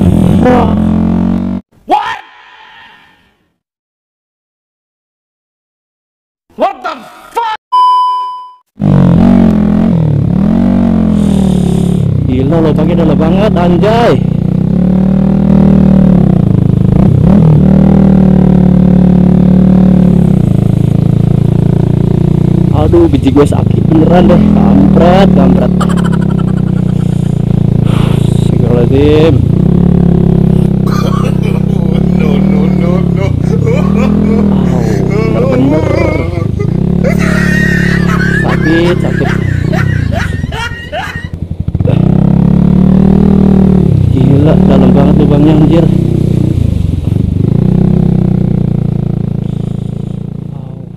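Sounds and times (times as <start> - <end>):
motorcycle engine at low revs: 0.0 - 1.6, 8.8 - 50.9.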